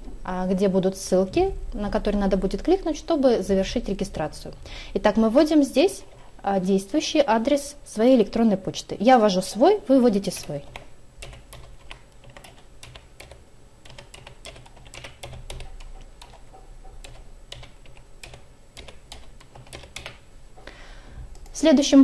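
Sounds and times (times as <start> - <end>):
steady low hum: 0.0 - 22.0.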